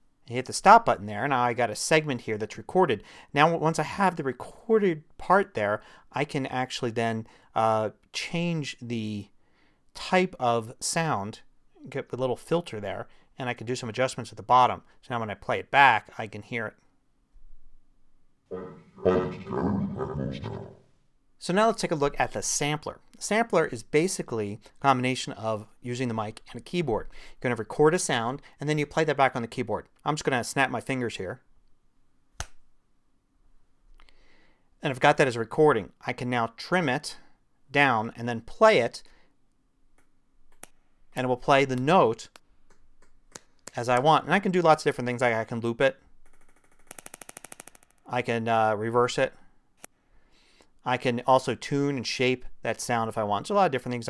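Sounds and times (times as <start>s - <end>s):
deep altered monster voice: 18.5s - 20.8s.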